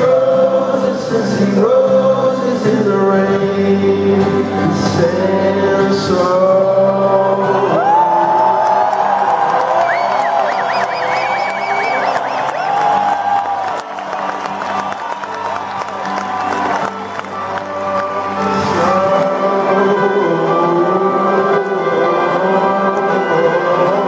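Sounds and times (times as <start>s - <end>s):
live band with acoustic guitar: 0.0s - 24.0s
audience cheering and whooping: 7.6s - 21.4s.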